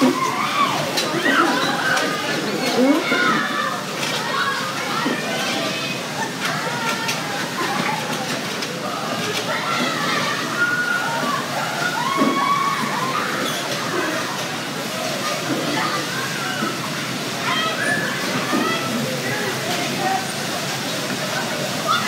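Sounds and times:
bumper cars rumbling: 0.0 - 22.0
voices shouting and chattering: 0.0 - 22.0.

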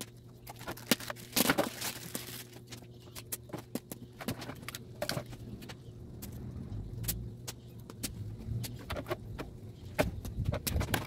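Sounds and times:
low rumble: 5.3 - 10.5.

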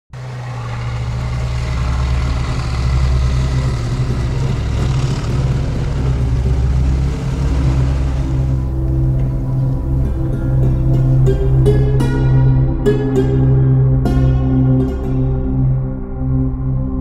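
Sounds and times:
tank diesel engine running: 0.1 - 15.6.

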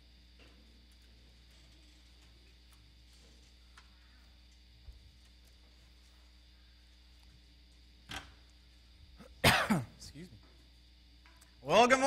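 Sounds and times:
man clearing his throat: 9.2 - 10.2.

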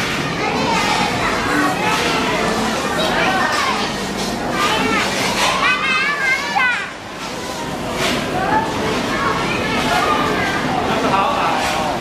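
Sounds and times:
background hubbub of voices: 0.0 - 12.0.

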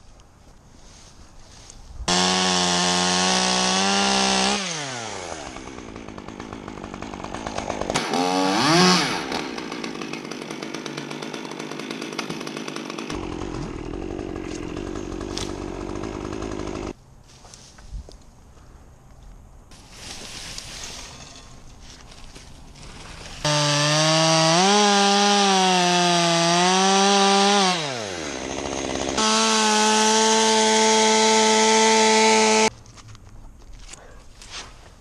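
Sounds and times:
chainsaw revving: 2.1 - 17.0, 22.8 - 32.7.

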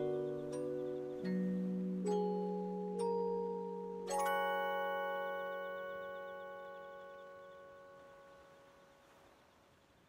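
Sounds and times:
music box chord ringing: 0.0 - 8.8.

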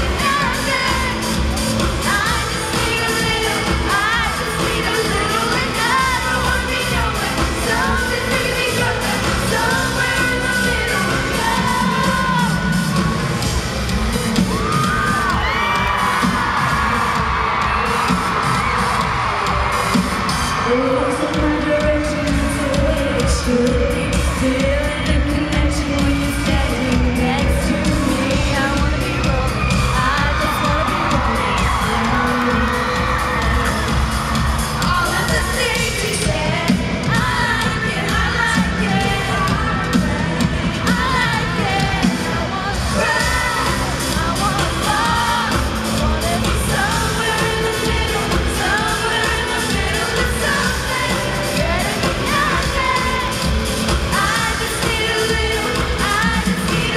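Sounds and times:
crowd screaming and whooping: 0.0 - 56.9
live pop band playing: 0.0 - 56.9
singing: 0.0 - 56.9.

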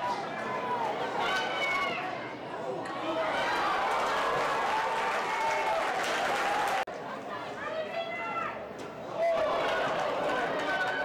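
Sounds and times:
crowd background noise: 0.0 - 11.0.

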